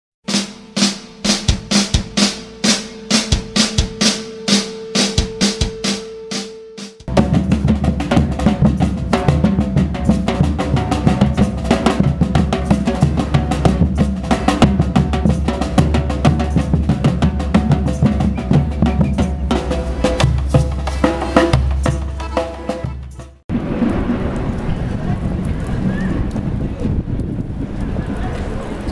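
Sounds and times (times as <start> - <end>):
evenly spaced drum hits: 0.2 - 23.5
street drum band playing: 0.2 - 23.5
held tone: 0.9 - 7.7.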